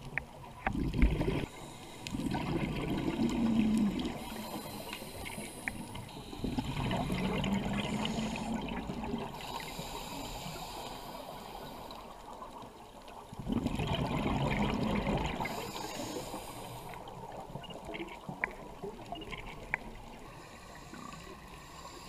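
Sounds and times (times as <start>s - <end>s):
scuba regulator bubbling exhalations: 0.6s - 9.9s, 13.4s - 16.2s.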